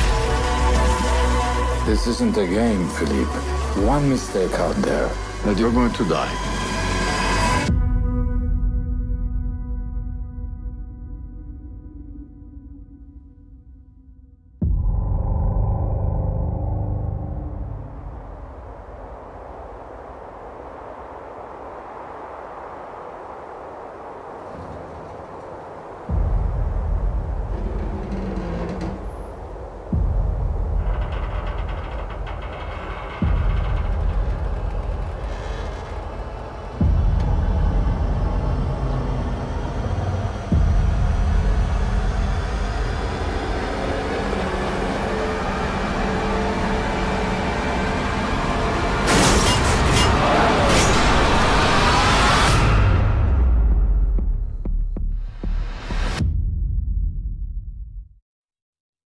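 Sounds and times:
rumbling low drone: 0.0s - 23.4s, 24.0s - 58.0s
deep booming hits: 26.1s - 36.0s.

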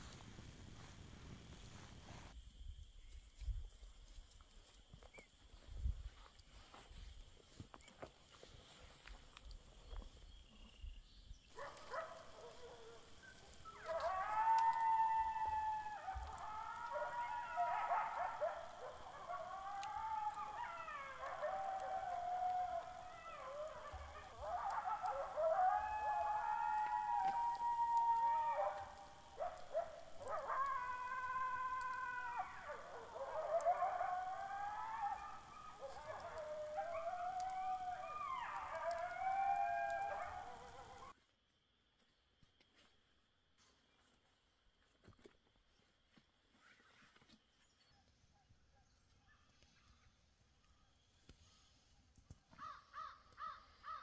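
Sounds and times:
coyotes howling and yipping: 5.0s - 41.2s, 47.6s - 54.0s.

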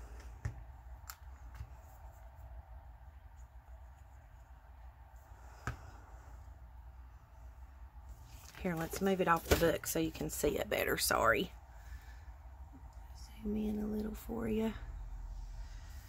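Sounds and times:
faint low hum: 0.0s - 16.0s
clicks and taps of handling paper: 0.2s - 1.9s.

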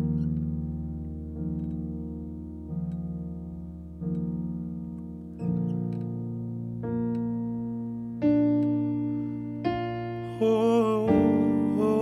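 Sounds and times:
electric piano chords: 0.0s - 12.0s
person singing with vibrato: 10.2s - 12.0s.

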